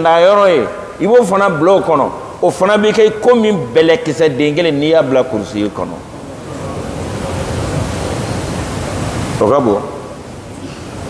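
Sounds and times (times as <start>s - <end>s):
rushing hiss: 6.3s - 11.0s.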